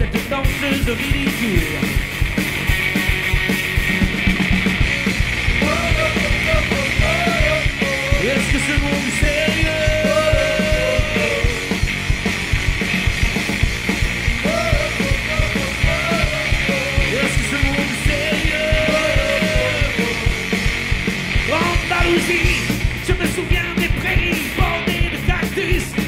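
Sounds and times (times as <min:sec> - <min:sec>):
drum kit: 0:00.0 - 0:26.0
electric guitars: 0:00.0 - 0:26.0.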